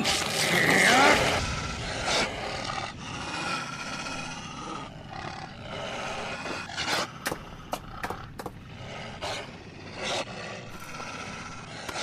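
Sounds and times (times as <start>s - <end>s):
creature roar: 0.0s - 6.8s.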